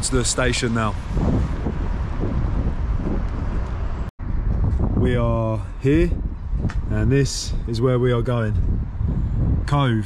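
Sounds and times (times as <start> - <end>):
street traffic: 0.0 - 10.0
wind noise on microphone: 0.0 - 10.0.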